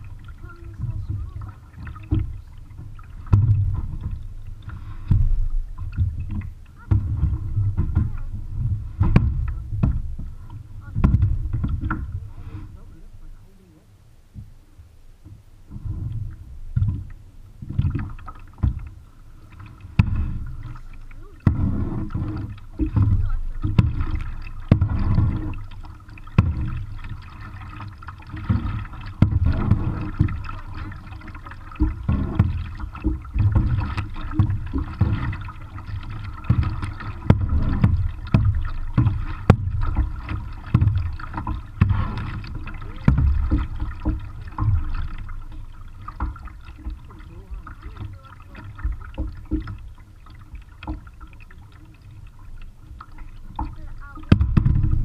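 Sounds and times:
low paddle thump: 0:00.0 - 0:13.4, 0:15.2 - 0:55.0
kayak paddles splashing water: 0:00.0 - 0:55.0.

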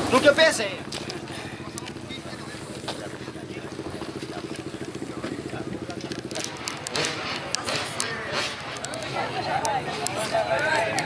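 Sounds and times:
motorcycle engine running: 0:00.0 - 0:11.0
people's voices: 0:00.0 - 0:11.0
clicks: 0:04.5 - 0:11.0.

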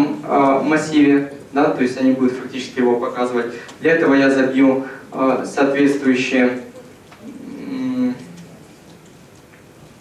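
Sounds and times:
man saying eh: 0:07.3 - 0:08.4.

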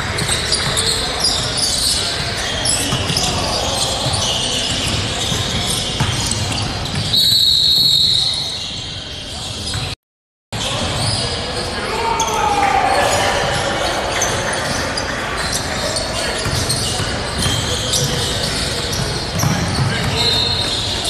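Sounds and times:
voices in a hall: 0:00.0 - 0:10.0, 0:10.6 - 0:21.0
basketball bouncing on gym floor: 0:16.4 - 0:20.2.

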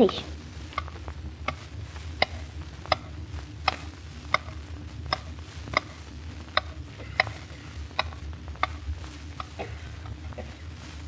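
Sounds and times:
low steady recording hum: 0:00.0 - 0:11.0.

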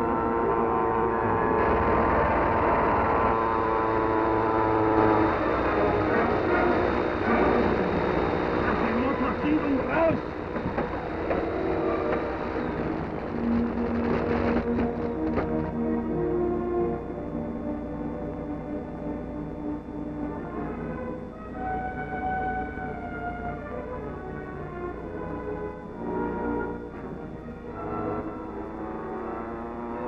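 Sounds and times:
aircraft engines droning: 0:00.0 - 0:30.0
dramatic orchestral music: 0:00.0 - 0:30.0.

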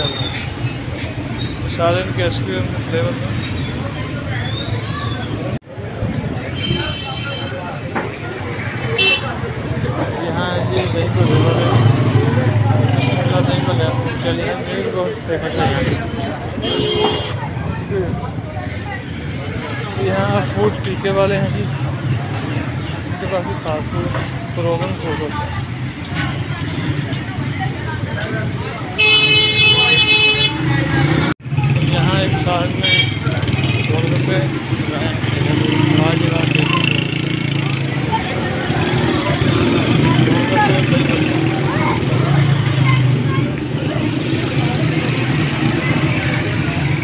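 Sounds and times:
motorcycle traffic passing: 0:00.0 - 0:47.0
people's voices: 0:00.0 - 0:47.0.

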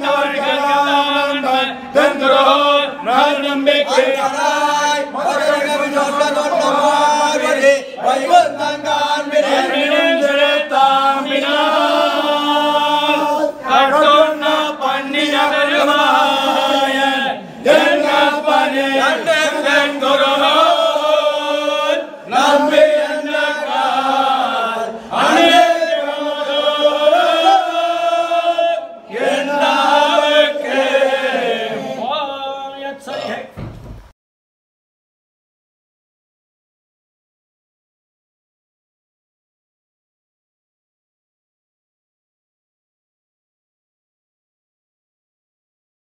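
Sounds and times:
men chanting in unison: 0:00.0 - 0:33.5.

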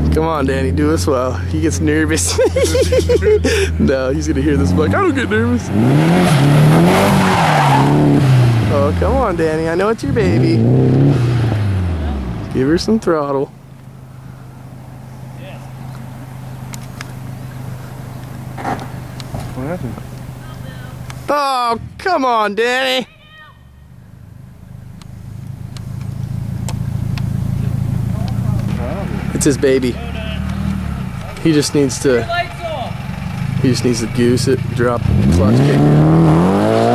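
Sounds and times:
car engine at high revs: 0:00.0 - 0:21.4, 0:24.0 - 0:36.9
tyres squealing: 0:00.9 - 0:36.9
faint clicks: 0:16.7 - 0:17.2, 0:24.9 - 0:27.3.

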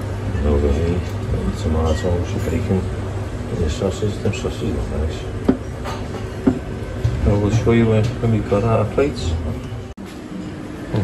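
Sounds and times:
sharp knocks: 0:05.5 - 0:06.7.

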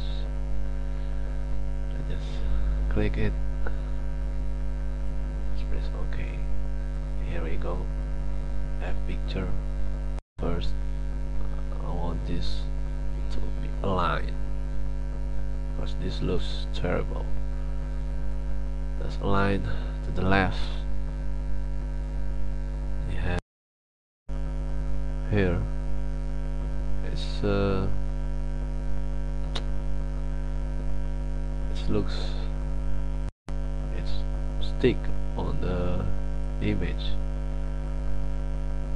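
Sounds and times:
electrical mains hum: 0:00.0 - 0:23.4, 0:24.3 - 0:38.9
brief click: 0:29.5 - 0:29.7.

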